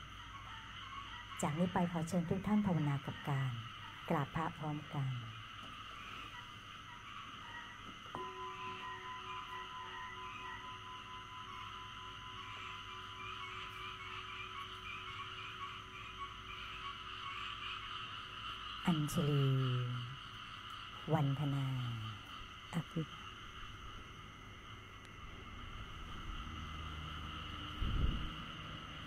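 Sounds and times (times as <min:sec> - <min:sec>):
chirping chorus: 0:00.0 - 0:23.8
bell ringing with long tone: 0:08.2 - 0:14.8.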